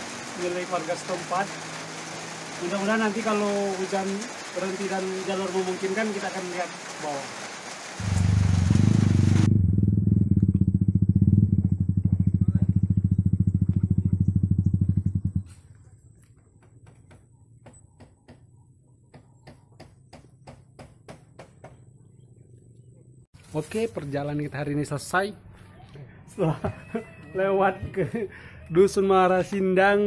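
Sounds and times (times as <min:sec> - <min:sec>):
engine running with rapid pulse: 0:08.0 - 0:15.6.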